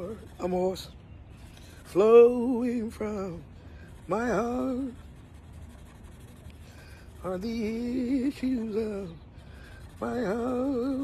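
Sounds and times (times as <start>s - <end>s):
marker scratching on a board: 0.0s - 0.9s, 1.5s - 11.0s
low steady rumble: 0.0s - 11.0s.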